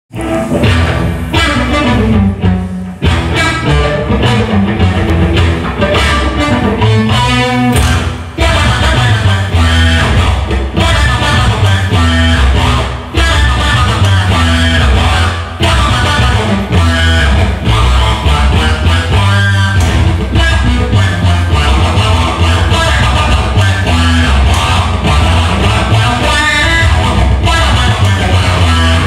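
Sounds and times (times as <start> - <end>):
live rock music electric guitar: 0.1 - 29.0.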